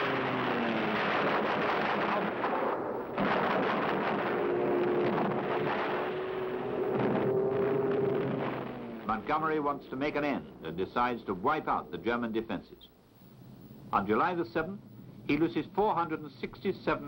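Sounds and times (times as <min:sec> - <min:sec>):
gunfire: 0:00.0 - 0:09.1
explosions: 0:00.0 - 0:09.4
droning aircraft engine: 0:00.0 - 0:12.1.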